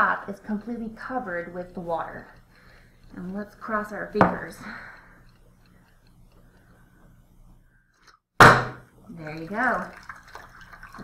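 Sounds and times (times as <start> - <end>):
low steady hum: 0.0 - 11.0
faint ticks: 4.6 - 7.3.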